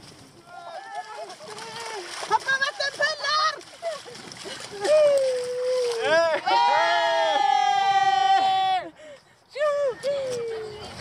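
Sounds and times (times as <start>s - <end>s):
splashing through mud: 0.0s - 6.5s
people shouting: 4.8s - 8.9s.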